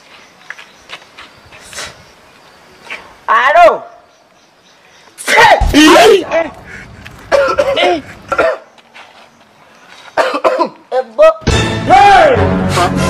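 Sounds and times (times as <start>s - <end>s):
man's wordless outbursts: 5.2s - 6.7s, 7.3s - 8.6s.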